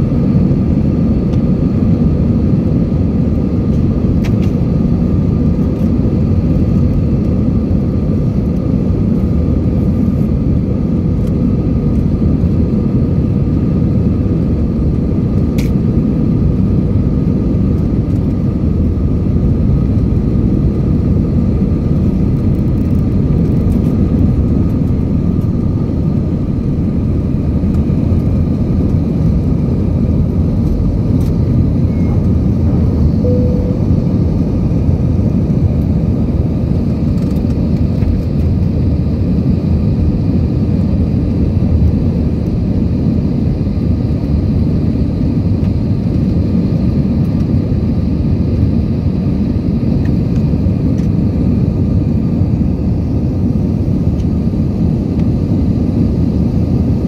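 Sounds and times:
jet engines roaring: 0:00.0 - 0:57.0.

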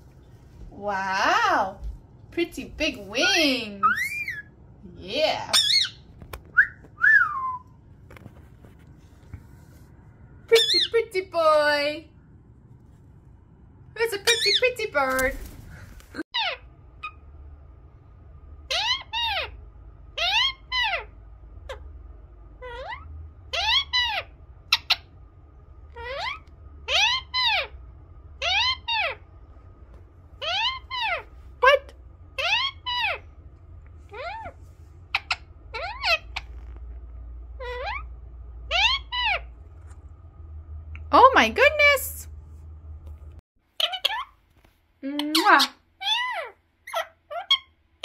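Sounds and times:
parakeet calling: 0:03.8 - 0:04.6, 0:05.5 - 0:06.1, 0:10.5 - 0:11.0, 0:14.2 - 0:14.8, 0:18.7 - 0:21.9, 0:22.6 - 0:25.2, 0:26.0 - 0:27.8, 0:28.4 - 0:29.2, 0:30.4 - 0:33.3, 0:34.1 - 0:36.7, 0:37.5 - 0:39.5, 0:43.8 - 0:44.4, 0:45.2 - 0:47.8.

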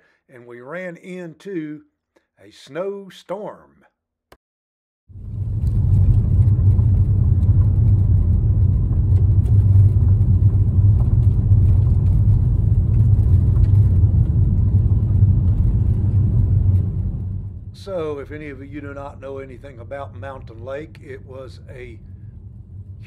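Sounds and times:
car engine and tyre rumble: 0:05.1 - 0:17.8.

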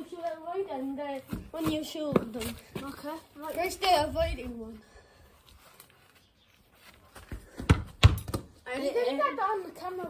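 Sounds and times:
football kicks on grass: 0:07.2 - 0:08.5.

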